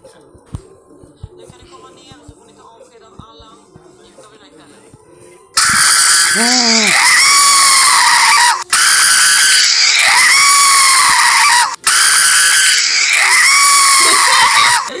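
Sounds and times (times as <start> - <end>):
shrill scream sound effect: 5.6 - 15.0.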